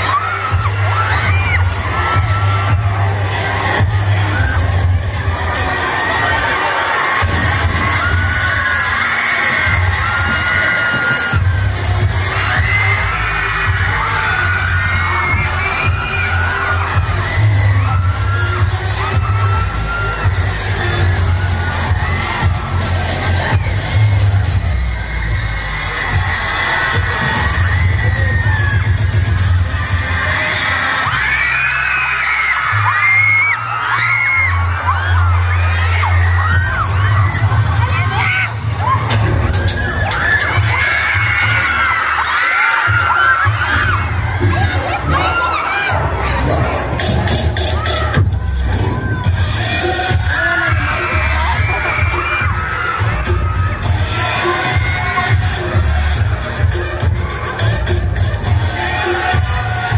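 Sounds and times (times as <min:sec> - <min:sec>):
crowd screaming and cheering: 0:00.0 - 0:59.9
dance music with heavy bass: 0:00.0 - 0:59.9.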